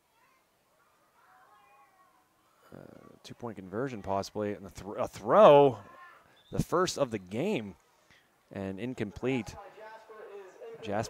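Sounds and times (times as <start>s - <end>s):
man commentating: 2.7s - 5.9s, 6.5s - 7.8s, 8.5s - 11.0s.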